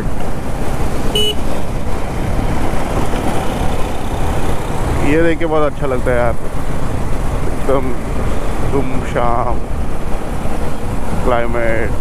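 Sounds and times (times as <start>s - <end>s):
motorcycle engine: 0.0s - 8.7s
wind rumble on microphone: 0.0s - 12.0s
short horn toot: 1.2s - 1.4s.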